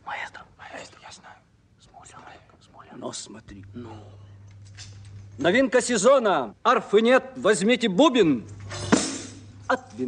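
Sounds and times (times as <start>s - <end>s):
person whispering: 0.0s - 4.1s.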